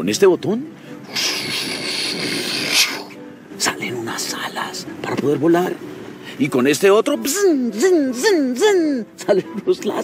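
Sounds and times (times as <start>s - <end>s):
man making whooshing mouth sound: 1.1s - 3.2s.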